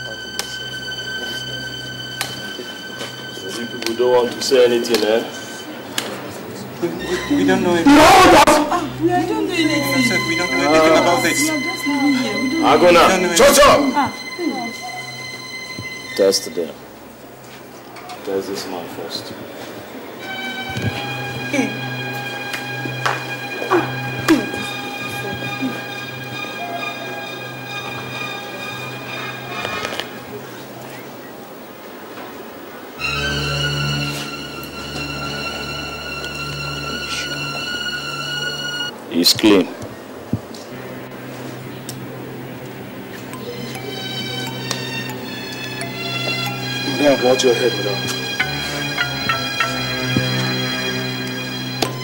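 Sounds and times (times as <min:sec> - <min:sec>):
steady score drone: 0:00.0 - 0:17.8, 0:19.8 - 0:31.1, 0:32.9 - 0:39.0, 0:40.7 - 0:52.0
faint voices: 0:00.0 - 0:48.9.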